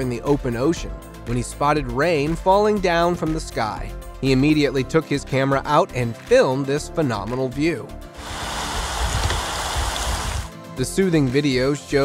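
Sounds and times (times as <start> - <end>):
rain falling on water: 8.2 - 10.5.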